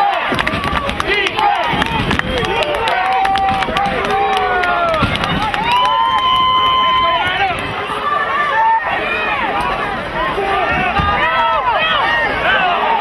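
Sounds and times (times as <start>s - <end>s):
voices shouting over each other: 1.0s - 13.0s.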